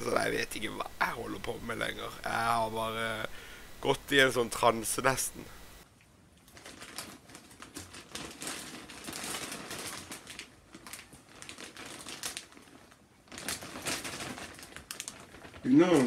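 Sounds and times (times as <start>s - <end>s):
plastic bag crinkling: 6.4s - 16.0s.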